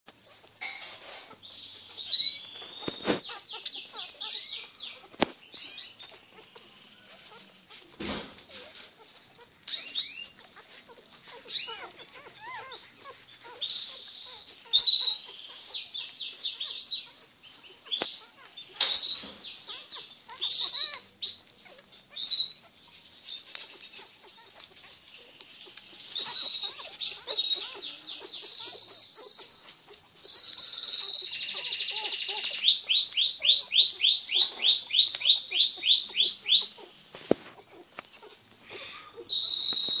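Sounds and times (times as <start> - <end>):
birds chirping: 0.2 - 40.0
buzzy bird call: 26.0 - 37.0.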